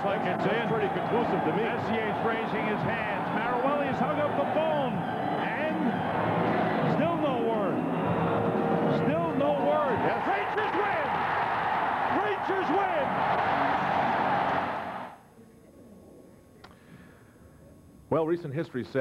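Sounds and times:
crowd cheering loudly: 0.0s - 15.2s
many voices shouting: 9.0s - 15.1s.

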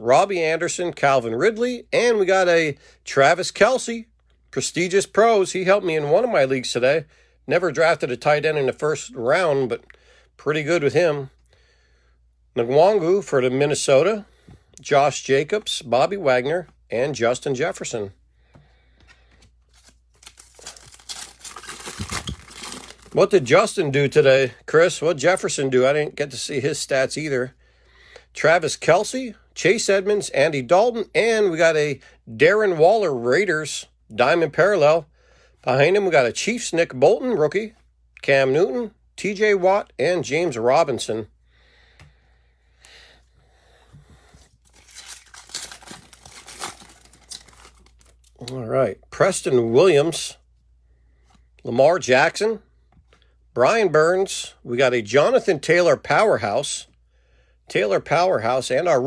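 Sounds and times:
foil wrapper crinkling and tearing: 19.7s - 23.4s, 44.6s - 48.5s.

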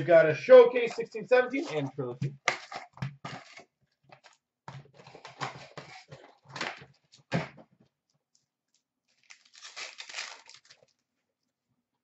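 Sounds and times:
wrapped packs rustling: 9.1s - 11.0s.

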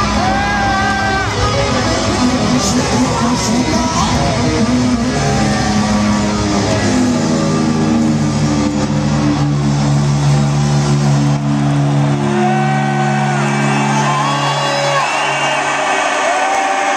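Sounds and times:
distorted electric guitar chord ringing: 0.0s - 15.3s.

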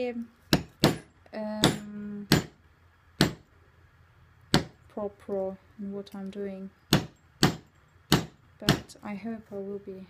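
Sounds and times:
mallet striking leather tool: 0.5s - 2.6s, 3.2s - 3.5s, 4.5s - 4.8s, 6.9s - 9.0s.

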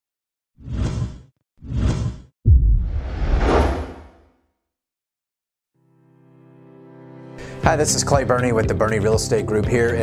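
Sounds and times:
heavy low hit: 2.5s - 3.5s
whoosh sound effects: 2.5s - 4.2s.

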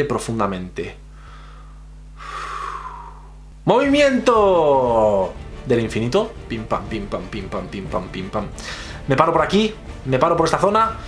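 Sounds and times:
man breathing in deeply: 1.1s - 3.5s, 8.6s - 9.0s.

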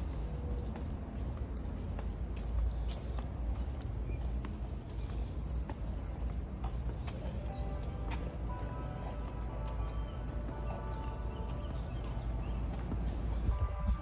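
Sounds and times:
wind rumble on microphone: 12.9s - 14.0s.

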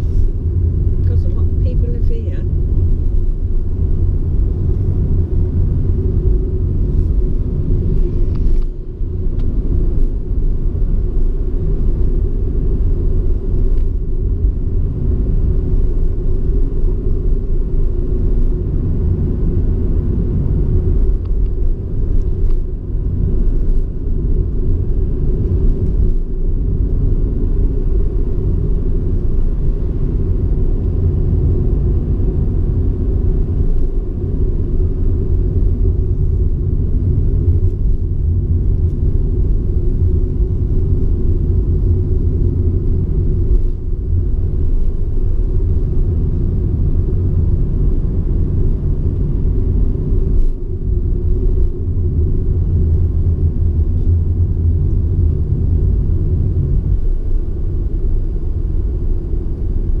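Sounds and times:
car engine and road rumble: 0.0s - 60.0s.

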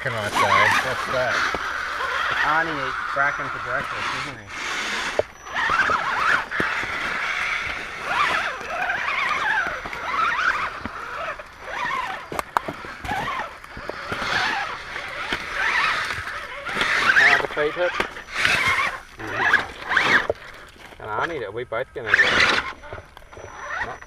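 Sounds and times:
electric motors whining: 0.0s - 24.0s
tyres scraping on stone: 0.0s - 24.0s.

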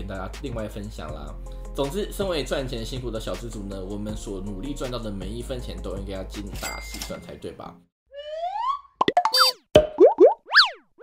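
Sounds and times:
rising pitch glides: 8.1s - 9.6s
cartoon clicks and pops: 9.0s - 10.8s.

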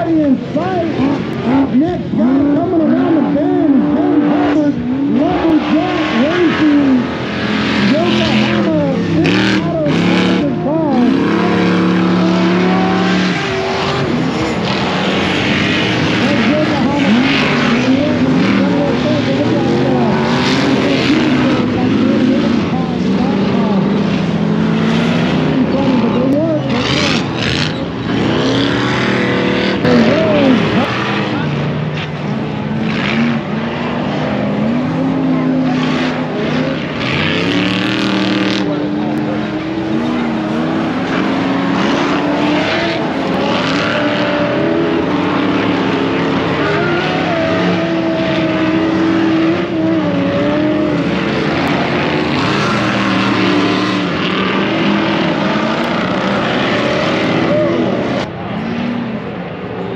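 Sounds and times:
voices in background: 0.0s - 50.9s
race car engines revving: 0.0s - 59.9s.

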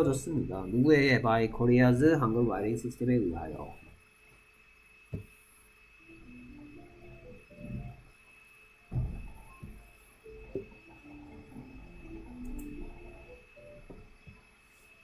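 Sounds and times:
faint stepping tune: 5.1s - 15.0s
knocks: 8.9s - 9.8s.

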